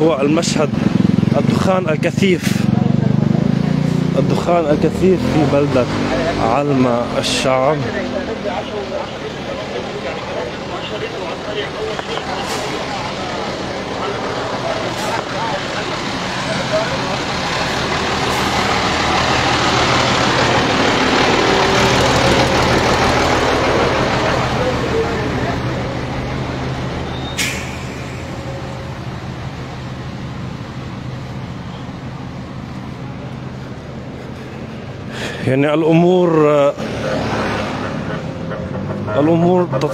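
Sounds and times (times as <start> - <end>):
truck engine running: 0.0 - 39.9.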